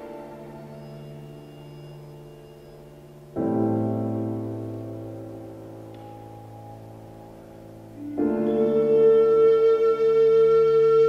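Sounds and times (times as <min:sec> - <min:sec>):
musical tone with overtones: 0:00.0 - 0:11.0.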